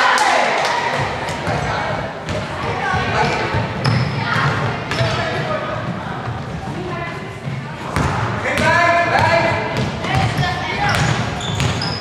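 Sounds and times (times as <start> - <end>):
basketball bouncing on wooden floor: 1.0 - 5.3, 6.2 - 12.0.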